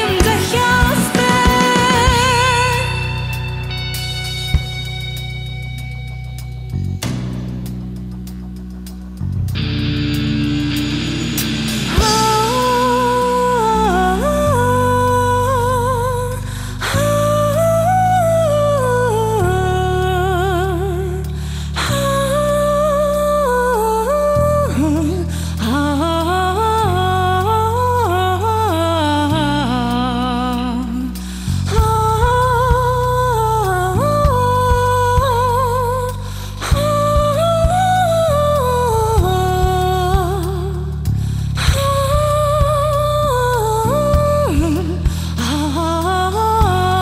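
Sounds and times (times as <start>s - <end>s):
woman singing a long note: 0.0s - 3.4s, 12.0s - 16.3s
woman singing: 0.0s - 3.8s, 11.8s - 47.0s
live band music: 0.0s - 14.2s
low hit: 0.0s - 15.4s
backing track of low chords: 0.0s - 47.0s
electric bass: 0.0s - 47.0s.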